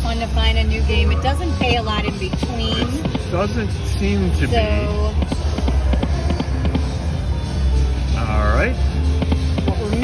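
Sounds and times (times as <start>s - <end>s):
slot machine game music: 2.8s - 10.0s.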